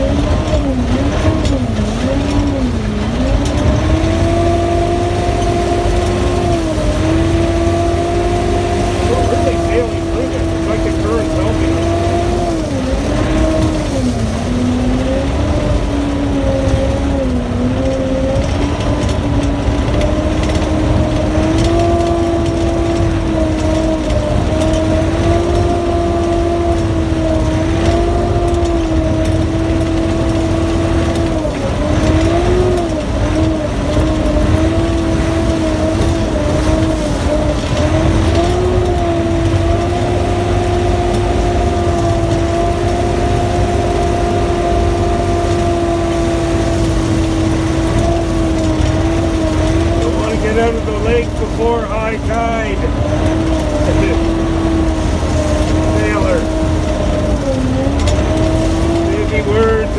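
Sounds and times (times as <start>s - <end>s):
diesel engine running with whine: 0.0s - 59.9s.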